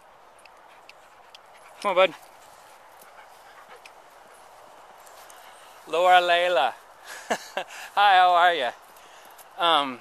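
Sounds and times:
small ticks: 0.3 - 4.2
dog panting: 0.4 - 6.0.

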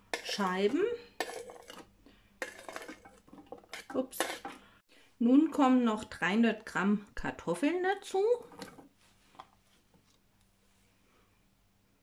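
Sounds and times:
knife scraping cutting board: 1.2 - 1.8.

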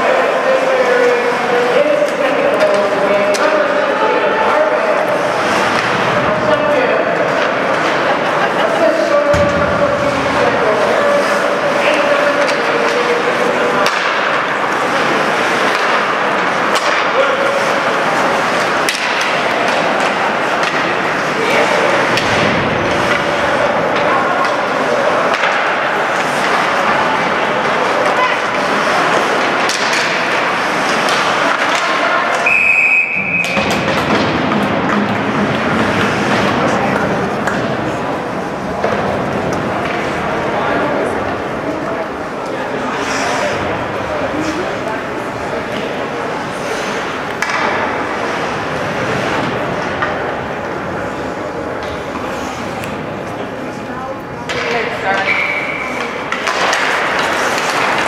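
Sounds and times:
pucks and sticks knocking boards: 0.5 - 8.3, 9.0 - 40.9, 45.5 - 53.4, 54.4 - 58.0
referee's whistle blast: 32.4 - 33.6.

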